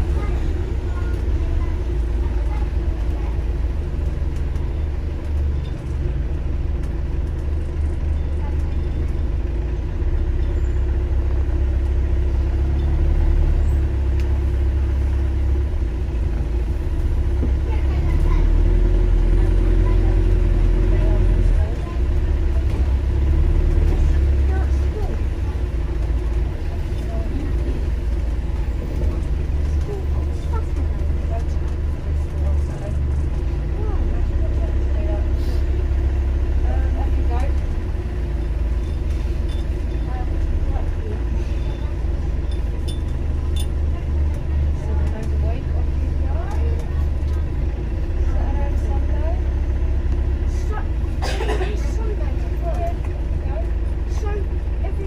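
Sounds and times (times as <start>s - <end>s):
bus engine drone and road rumble: 0.0s - 55.0s
faint passenger voices: 0.0s - 55.0s.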